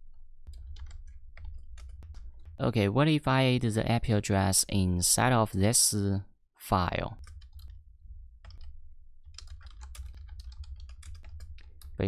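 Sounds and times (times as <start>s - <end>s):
steady low hum: 0.0s - 5.4s
keyboard keys clicking: 0.5s - 2.6s, 7.2s - 7.8s, 8.4s - 12.0s.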